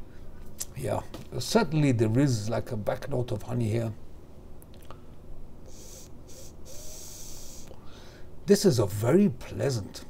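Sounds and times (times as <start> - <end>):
man drawing on e-cigarette: 5.7 - 7.7
breathy exhale hiss: 5.7 - 8.3.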